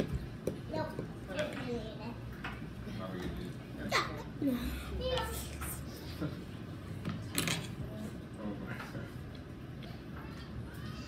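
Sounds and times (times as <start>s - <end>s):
tableware clattering: 7.2s - 7.8s.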